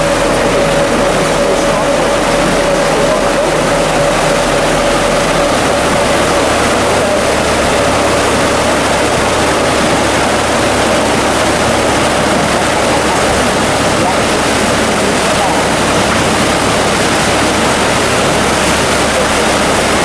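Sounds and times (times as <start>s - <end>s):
low hum: 0.0s - 20.0s
water rushing into lock chamber: 0.0s - 20.0s.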